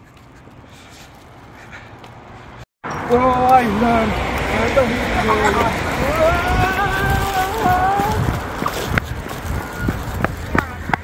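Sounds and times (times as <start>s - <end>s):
scooter road rumble: 0.0s - 11.0s
wind noise on microphone: 5.1s - 11.0s.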